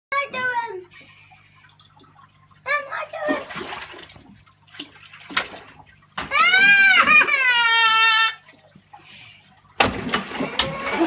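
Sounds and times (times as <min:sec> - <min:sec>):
water splashing into aquarium: 0:00.2 - 0:11.0.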